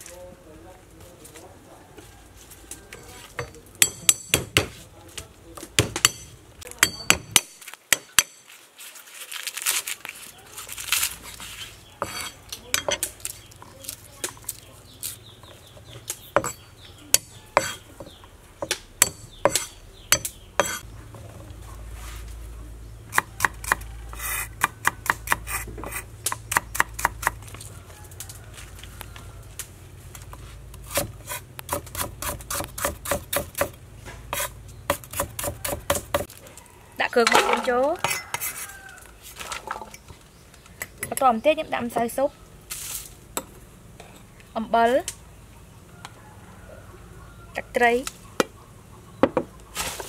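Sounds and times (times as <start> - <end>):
cleaver chopping on wooden block: 3.4 - 4.8, 5.7 - 8.4, 16.3 - 20.8, 23.1 - 27.4, 30.9 - 36.3
cleaver knocking on wooden block: 16.4 - 20.8.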